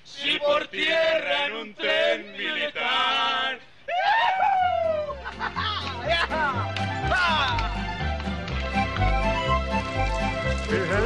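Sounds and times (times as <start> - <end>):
men singing and hollering: 0.1 - 3.6, 10.6 - 11.0
music track with bass line: 5.3 - 11.0.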